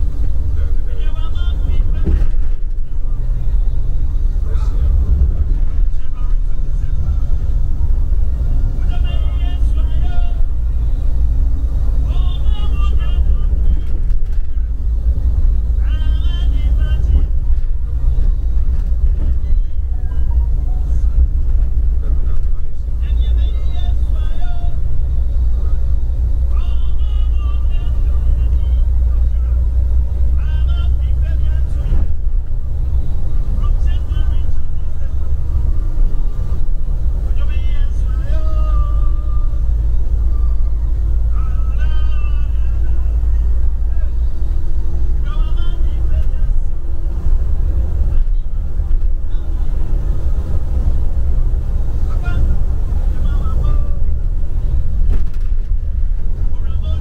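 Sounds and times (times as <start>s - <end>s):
bus engine and road rumble: 0.0s - 57.0s
voices: 0.0s - 57.0s.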